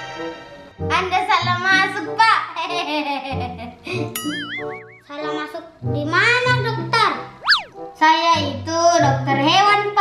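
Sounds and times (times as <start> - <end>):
playful children's music: 1.4 - 8.0
swooping whistle-like tone: 4.4 - 5.1, 7.4 - 7.8.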